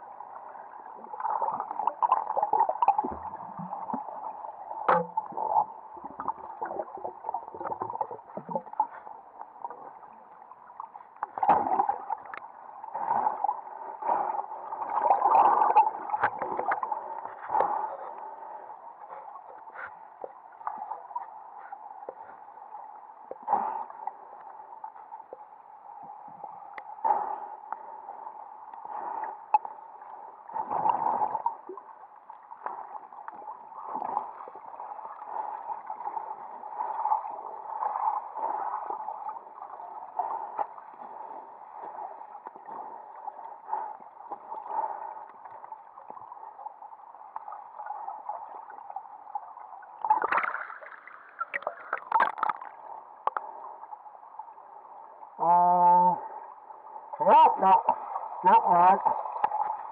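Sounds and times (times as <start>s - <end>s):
muffled underwater stream rush: 0.0s - 59.9s
water splashing and knocks: 11.3s - 12.0s.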